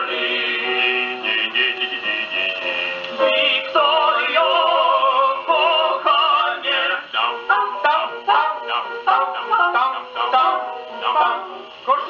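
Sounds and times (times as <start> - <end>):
gramophone playing dance-band music: 0.0 - 12.0.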